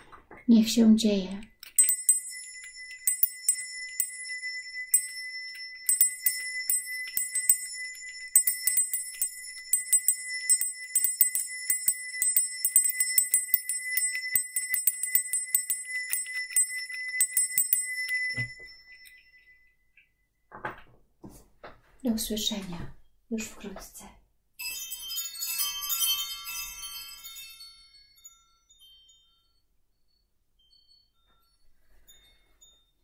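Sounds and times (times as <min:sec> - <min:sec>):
hand bell ringing: 0:01.6 - 0:19.8.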